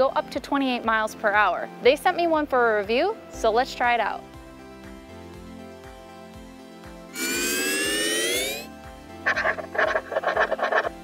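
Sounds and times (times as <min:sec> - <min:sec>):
soft background music: 0:00.0 - 0:11.0
rising synthesized sweep: 0:07.1 - 0:08.8
short warbling pitched blips: 0:07.2 - 0:08.7.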